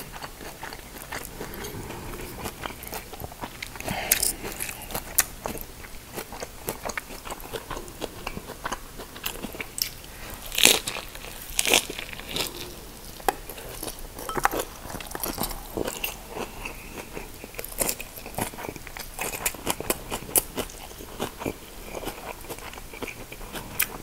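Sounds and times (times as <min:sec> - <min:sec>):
crunchy chewing: 0:00.0 - 0:24.0.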